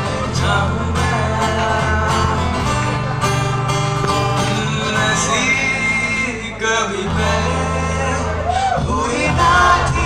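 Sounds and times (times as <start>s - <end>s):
man singing: 0.0s - 3.0s, 4.2s - 10.0s
acoustic guitar: 0.0s - 10.0s
electric bass: 0.0s - 10.0s.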